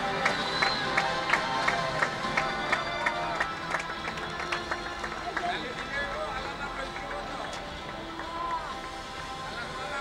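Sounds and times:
background music: 0.0 - 10.0
people talking: 4.7 - 10.0.

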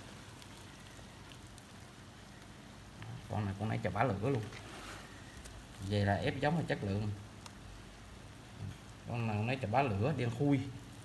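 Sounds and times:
rustling with light crackles: 0.0 - 11.0.

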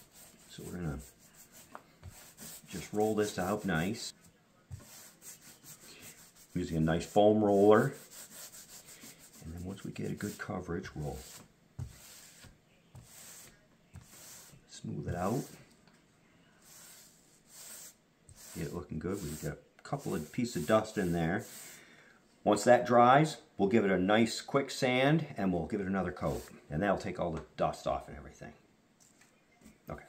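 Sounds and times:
foam paint roller rubbing: 0.0 - 4.1, 4.7 - 15.6, 16.6 - 21.8, 26.2 - 26.5.

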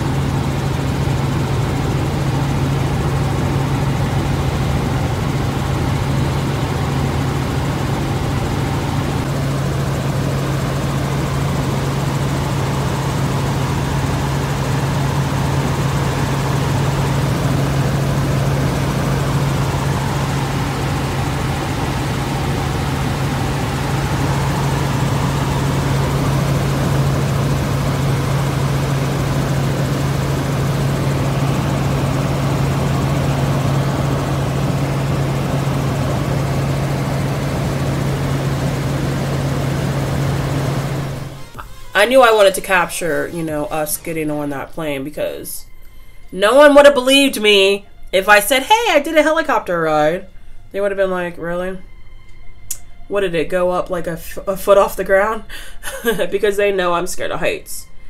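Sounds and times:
helicopter cabin drone: 0.0 - 58.0.

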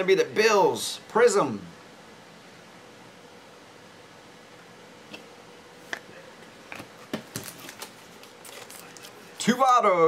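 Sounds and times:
cards and plastic holders handled: 6.7 - 9.4.

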